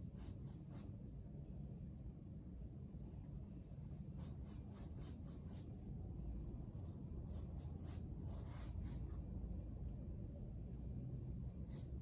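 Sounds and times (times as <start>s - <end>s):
paintbrush swishing on canvas: 0.0s - 1.0s, 3.4s - 5.9s, 6.7s - 9.2s
low room hum: 0.0s - 12.0s.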